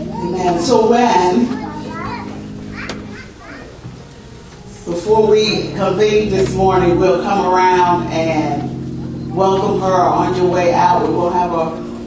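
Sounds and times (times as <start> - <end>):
children's voices: 0.0 - 4.5
quiet chatter: 0.0 - 12.0
steady low tone: 3.8 - 12.0.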